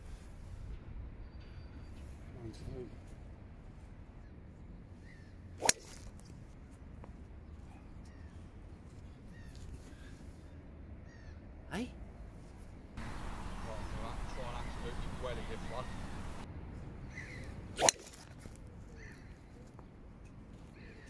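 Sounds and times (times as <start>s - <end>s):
faint bird chirps: 5.0s - 5.4s, 13.0s - 16.4s
golf club striking ball: 5.6s - 6.0s, 13.0s - 16.4s.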